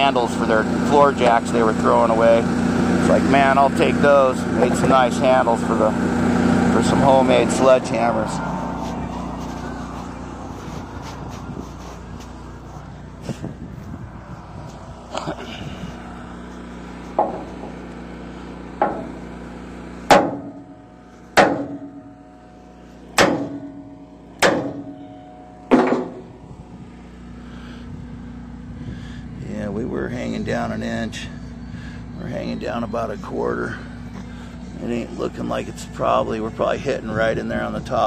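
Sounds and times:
sledgehammer striking steel: 18.8s - 19.3s, 20.1s - 20.8s, 21.4s - 22.5s, 23.1s - 26.3s
steel ringing: 21.6s - 26.4s.

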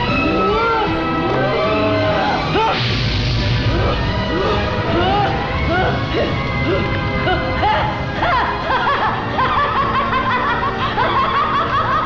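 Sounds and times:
woman laughing manically: 7.3s - 12.0s.

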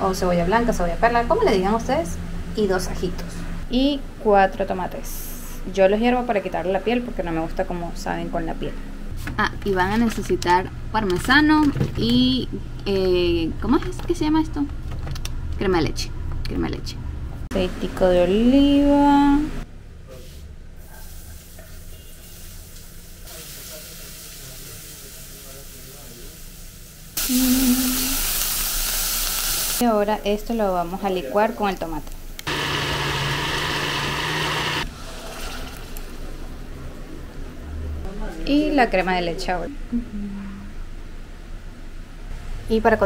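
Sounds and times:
onion sizzling in oil: 21.0s - 32.9s.

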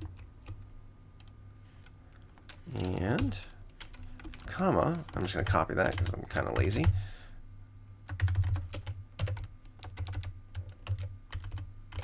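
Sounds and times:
computer keyboard typing: 0.0s - 1.4s, 2.3s - 7.0s, 8.1s - 12.0s.

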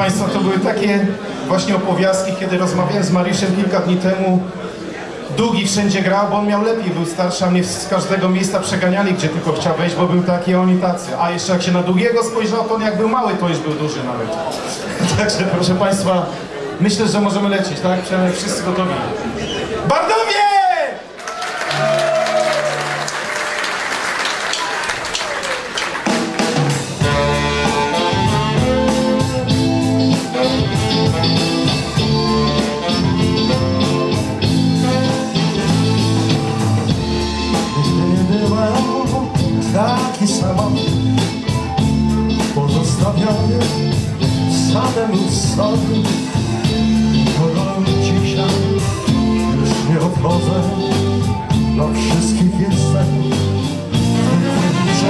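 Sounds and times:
rock-jazz band playing: 0.0s - 4.0s, 24.5s - 55.0s
audience applause: 21.1s - 27.0s
steady drum beat: 25.9s - 55.0s
tenor saxophone: 27.0s - 38.0s, 53.9s - 55.0s.

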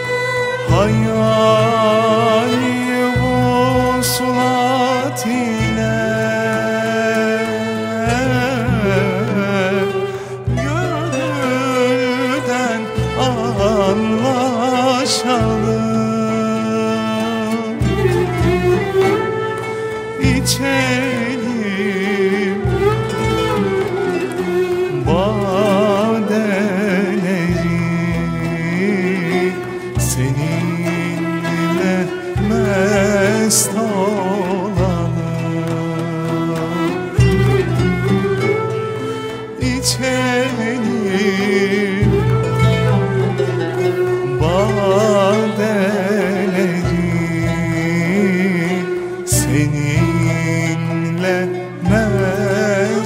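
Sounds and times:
plucked strings: 0.0s - 53.0s
wavering melody: 0.0s - 53.0s.

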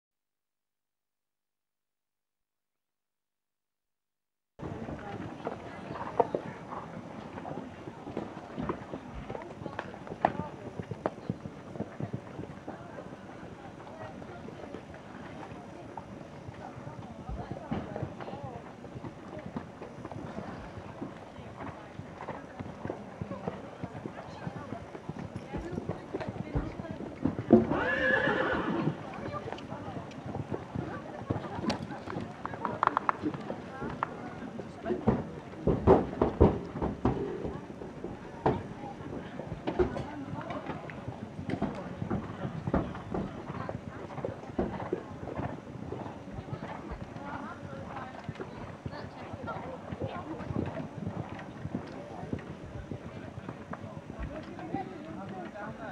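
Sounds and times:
horse hoofbeats on sand: 4.6s - 55.9s.

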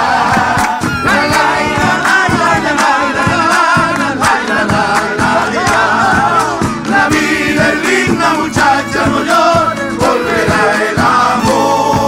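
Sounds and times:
violins: 0.0s - 5.8s, 6.4s - 12.0s
drum beat: 0.0s - 12.0s
men singing in chorus: 0.0s - 12.0s
strummed acoustic guitars: 0.0s - 12.0s.

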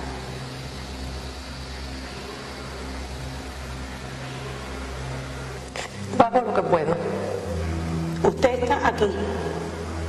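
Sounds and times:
even hiss: 0.0s - 10.0s
steady low hum: 0.0s - 10.0s.

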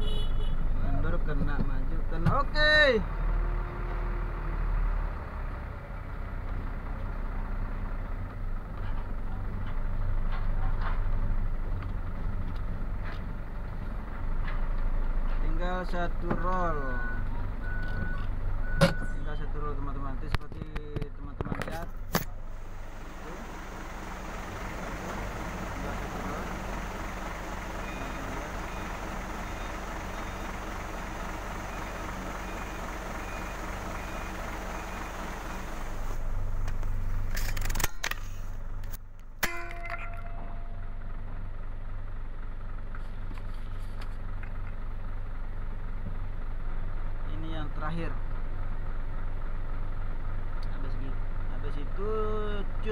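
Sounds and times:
diesel truck engine idling: 0.0s - 20.4s, 21.2s - 52.9s
faint short beeps: 16.8s - 19.5s, 27.8s - 30.6s.

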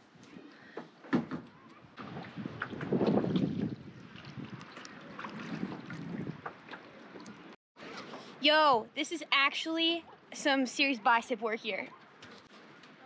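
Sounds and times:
paddle splashing water: 2.0s - 8.4s.

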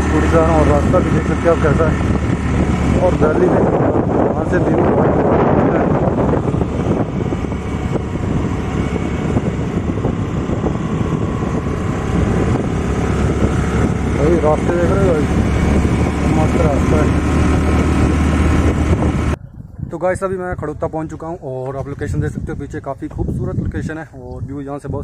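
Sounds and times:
motor scooter engine running: 0.0s - 19.4s
wind buffeting microphone: 0.0s - 25.0s.

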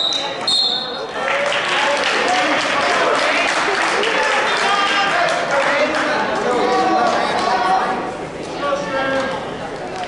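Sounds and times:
voices calling out in a hall: 0.0s - 10.0s.

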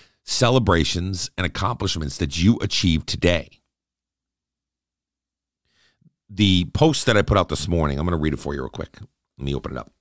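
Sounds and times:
faint breath drawn in: 5.6s - 6.2s.

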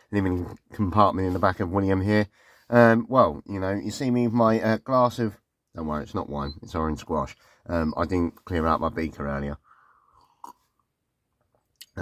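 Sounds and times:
gulp: 10.1s - 10.8s
sipping and swallowing: 10.1s - 10.9s
mouth click: 11.7s - 12.0s.

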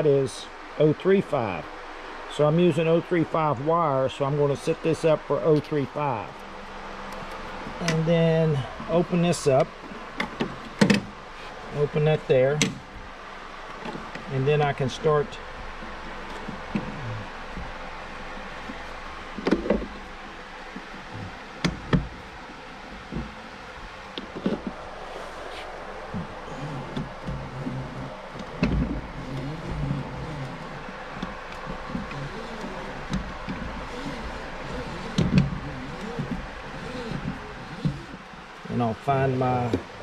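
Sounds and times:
steady low hum: 0.0s - 40.0s.

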